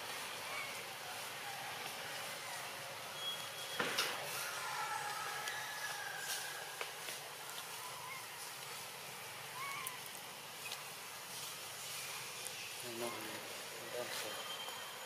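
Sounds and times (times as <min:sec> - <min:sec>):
forest hiss: 0:00.0 - 0:15.0
faint bird chirps and whistles: 0:03.1 - 0:03.8, 0:14.0 - 0:15.0.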